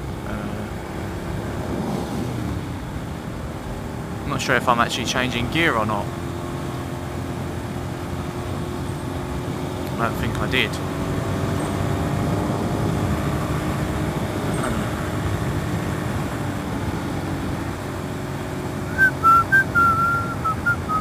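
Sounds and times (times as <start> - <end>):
motorcycle engine cruising: 0.0 - 21.0
short whistled notes: 18.9 - 21.0.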